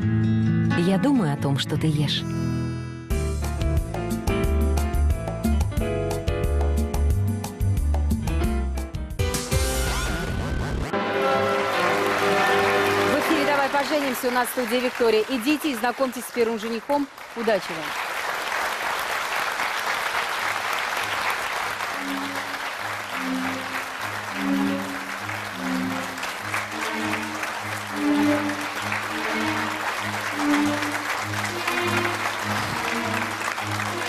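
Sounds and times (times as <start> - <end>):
upbeat show music: 2.2 - 15.6, 20.6 - 34.0
studio audience applauding: 10.9 - 34.0.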